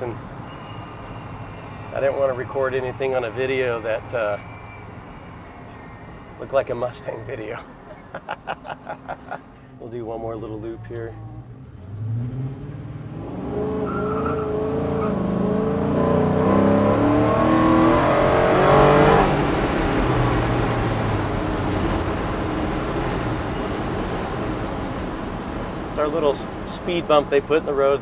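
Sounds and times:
engine revving under load: 11.4s - 24.1s.

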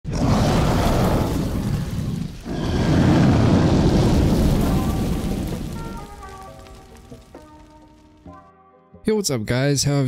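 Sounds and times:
rumbling fire and explosion booms: 0.1s - 8.2s.

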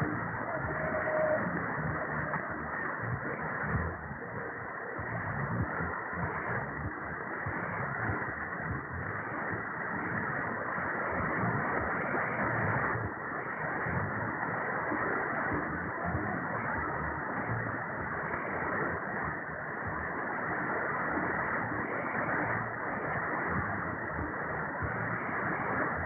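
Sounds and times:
muffled radio static and crackle: 0.0s - 26.0s
weak radio station programme: 0.0s - 26.0s.

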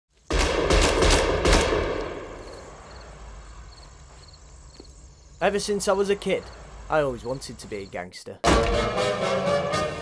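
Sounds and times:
gunshots echoing: 0.3s - 2.9s
crickets chirping: 2.2s - 8.2s.

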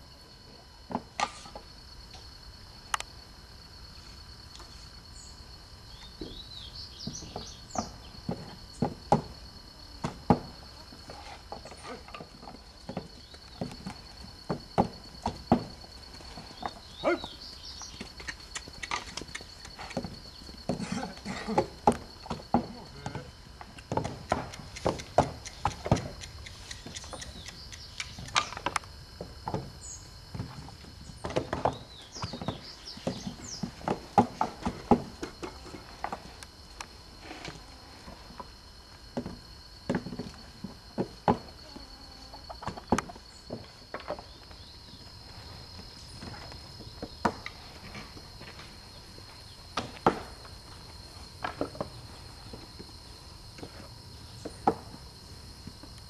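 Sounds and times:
high insect buzz: 0.0s - 56.0s
knocks of brick-making work: 7.0s - 9.4s, 30.3s - 36.3s.

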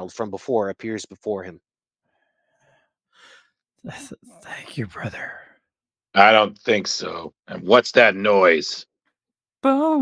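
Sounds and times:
person speaking: 3.9s - 5.4s, 6.2s - 8.7s.

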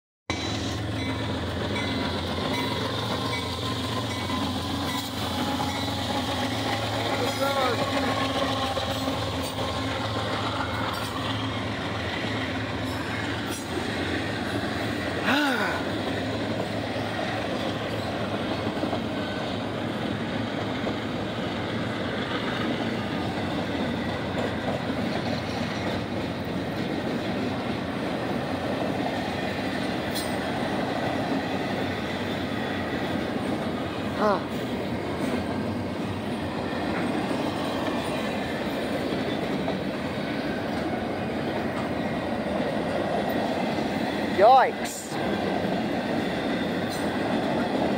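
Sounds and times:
diesel locomotive engine hum: 0.3s - 47.9s
train cars rumbling on rails: 0.3s - 47.9s.

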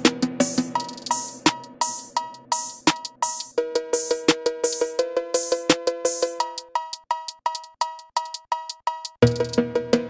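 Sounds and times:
drum machine hits: 0.0s - 10.0s.

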